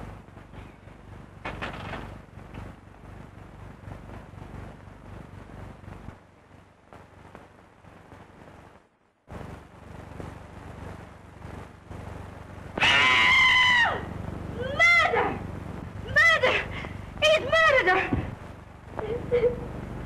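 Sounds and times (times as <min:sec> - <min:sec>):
film soundtrack hiss and crackle: 0:00.0 - 0:20.0
woman screaming: 0:12.8 - 0:15.4, 0:16.0 - 0:18.2
wailing cries: 0:12.8 - 0:18.3.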